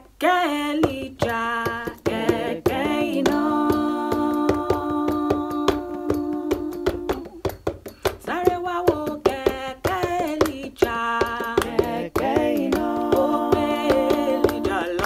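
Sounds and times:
woman singing in harmony: 0.0 - 7.5, 8.2 - 15.0
hand claps: 0.8 - 15.0.

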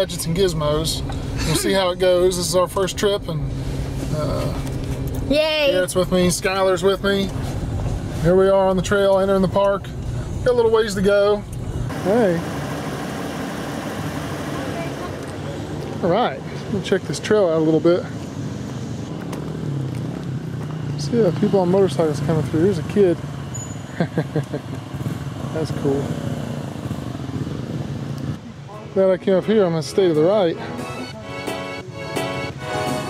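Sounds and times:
car engine hum: 0.0 - 28.6
tyre and road noise: 0.0 - 33.0.

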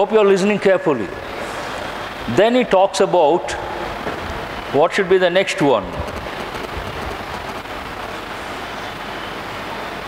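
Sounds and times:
steady rushing noise: 1.0 - 10.0.

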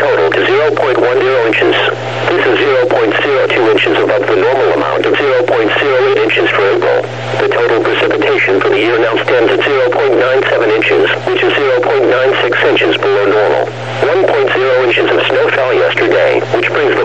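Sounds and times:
steady low hum: 0.0 - 17.0
synthesized announcer voice: 0.0 - 17.0.

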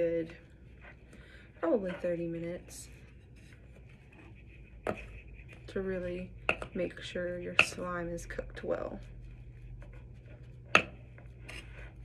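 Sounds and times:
spoon stirring slime: 0.0 - 12.0.

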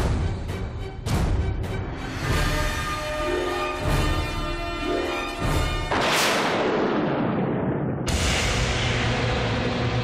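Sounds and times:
boom sound effect hit: 5.9 - 10.0.

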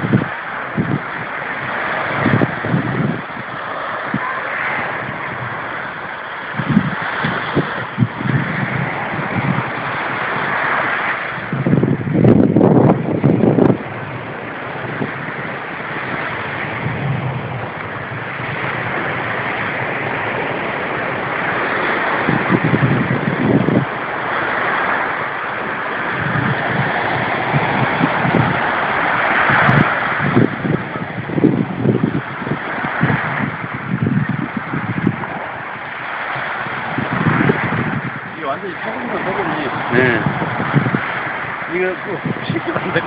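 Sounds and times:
ocean waves breaking on beach: 0.0 - 43.0
wind buffeting microphone: 0.0 - 43.0.

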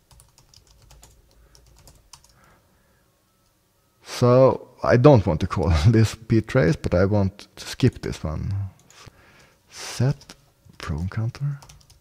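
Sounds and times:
faint computer keyboard typing: 0.0 - 2.6, 11.5 - 12.0.

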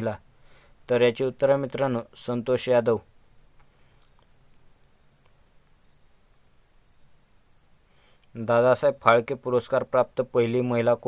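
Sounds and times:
background hiss: 0.0 - 11.0.

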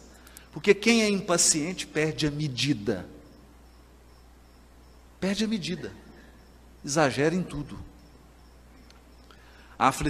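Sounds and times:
insect chirping: 0.0 - 10.0
steady low hum: 0.0 - 10.0.

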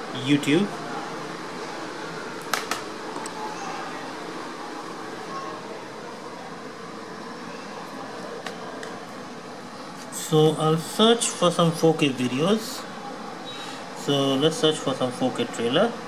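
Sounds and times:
fan humming: 0.0 - 16.0.

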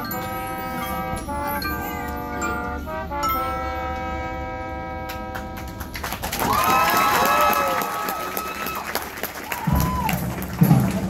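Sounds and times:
marching band holding a chord: 0.0 - 6.3, 9.6 - 11.0
crowd cheering and whooping: 6.3 - 10.8.

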